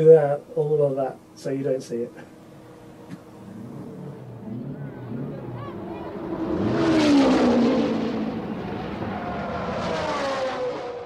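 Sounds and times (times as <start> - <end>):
racing car engines passing: 2.3 - 11.0.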